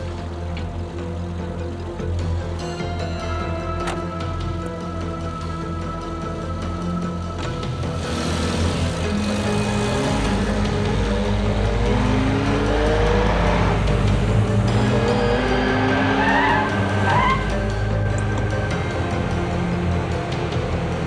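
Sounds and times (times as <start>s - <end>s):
music score: 0.0s - 21.0s
car engine revving: 7.3s - 21.0s
tyre squeals: 15.8s - 17.6s.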